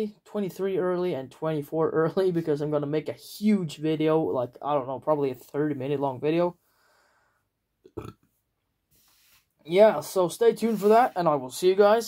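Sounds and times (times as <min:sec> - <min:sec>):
person's low throat noise: 0:07.9 - 0:08.3.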